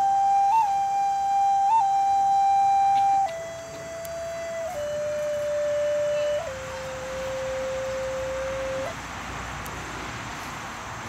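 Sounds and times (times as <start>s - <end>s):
wooden flute playing long notes: 0.0s - 9.0s.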